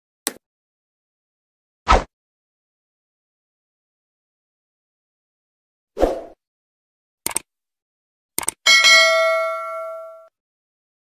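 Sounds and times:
double mouse click: 8.4s - 8.6s
bright bell ding: 8.7s - 10.3s.

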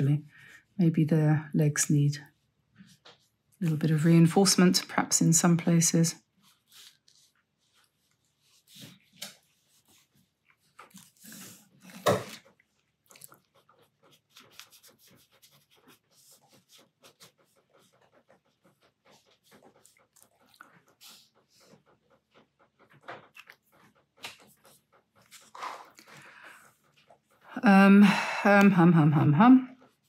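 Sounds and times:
brush pen scratching paper: 5.6s - 27.5s.

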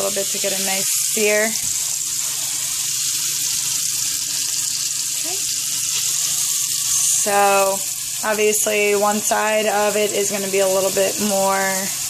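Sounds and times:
meat sizzling in a frying pan: 0.0s - 12.0s.

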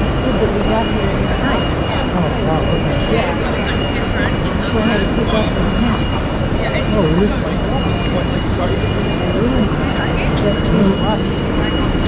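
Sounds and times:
background chatter of passengers: 0.0s - 12.0s.

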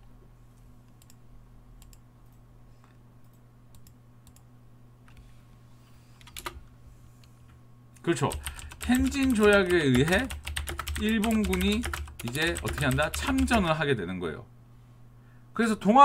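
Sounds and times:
low electrical hum: 0.0s - 16.0s
computer keyboard typing: 6.2s - 6.6s, 8.3s - 13.7s.

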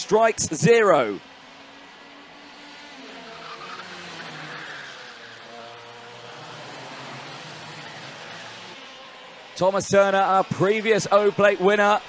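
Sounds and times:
racing kart engines: 0.0s - 12.0s.

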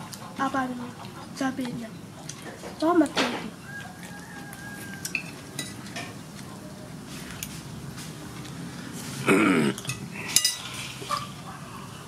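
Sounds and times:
metal spoon clinking on plate: 9.8s - 10.7s.

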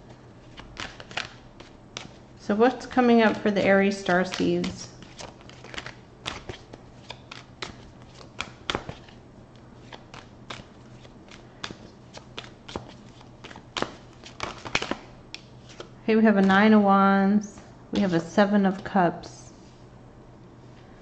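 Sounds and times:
cards being shuffled: 0.4s - 16.5s.

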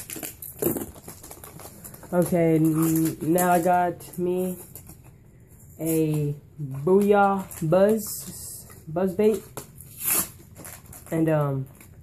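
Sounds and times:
plastic packaging clicks and rustles: 0.0s - 5.1s.

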